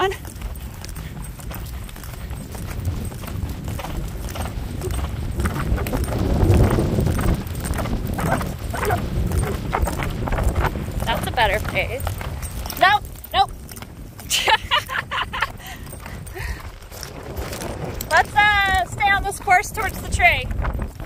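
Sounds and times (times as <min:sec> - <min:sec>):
hoofbeats on turf: 0:00.0 - 0:21.0
low rumble: 0:00.0 - 0:21.0.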